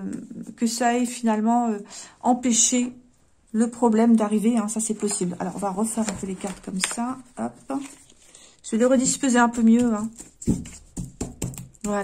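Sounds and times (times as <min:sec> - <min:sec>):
cards tapping on a cloth table: 0:09.6 - 0:12.0.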